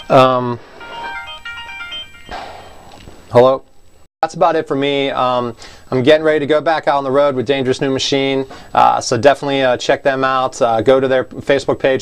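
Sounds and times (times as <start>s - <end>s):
phone ringtone melody: 0.0s - 2.9s.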